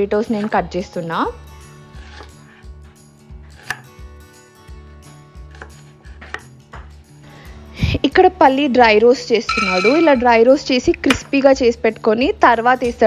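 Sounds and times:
faint background music: 0.0s - 13.0s
knife chopping on wooden board: 5.5s - 6.9s.

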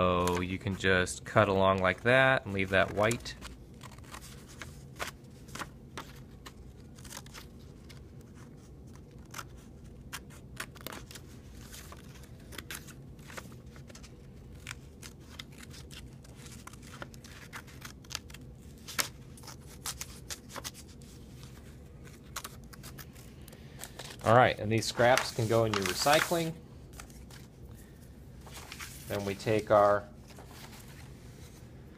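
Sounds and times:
paper rustling: 1.6s - 27.8s, 28.4s - 31.6s
scissors snipping paper: 2.8s - 8.0s, 8.9s - 13.4s.

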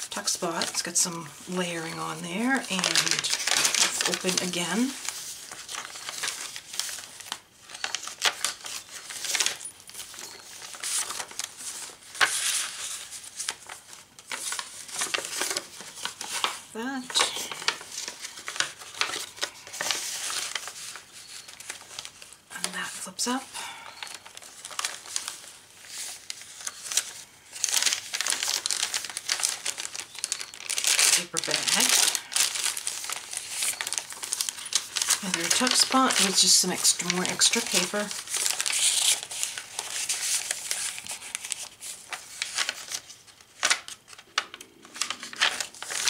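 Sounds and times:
paper pages rustling: 0.0s - 46.0s.

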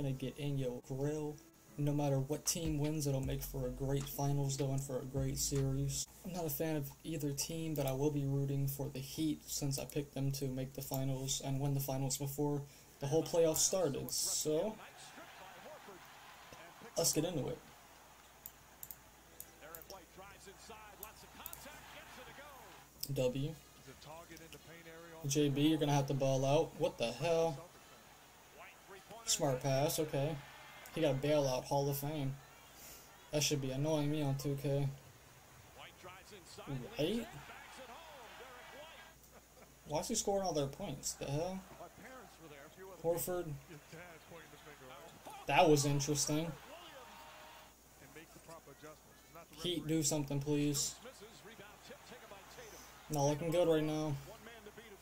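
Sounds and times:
broadcast commentator voice: 0.0s - 17.7s, 19.4s - 35.0s, 35.7s - 39.2s, 39.8s - 55.0s.

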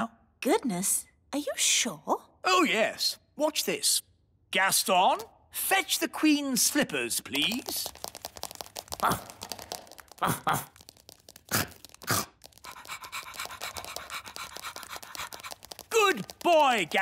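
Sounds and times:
pattering of scuttling steps: 6.7s - 17.0s.

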